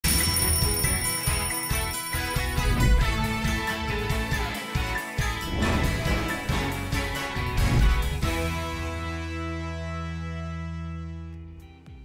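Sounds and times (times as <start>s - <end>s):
alarm clock bell ringing: 0.0s - 3.9s
upbeat jingle music: 0.0s - 10.2s.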